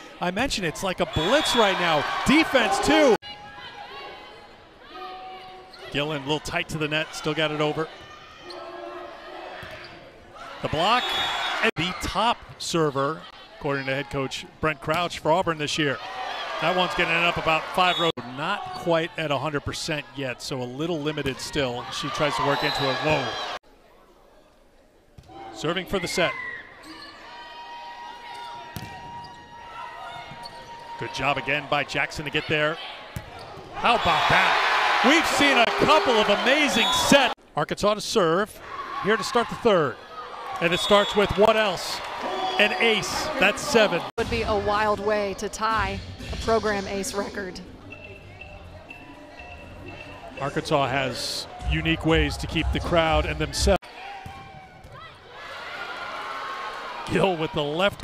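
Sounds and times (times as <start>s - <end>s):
crowd cheering murmur: 33.8s - 37.4s
low crowd noise: 45.9s - 55.4s.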